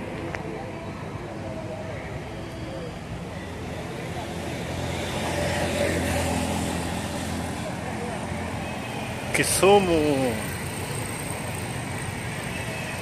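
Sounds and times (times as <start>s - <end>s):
street noise: 0.0s - 13.0s
motor vehicle passing: 4.1s - 12.4s.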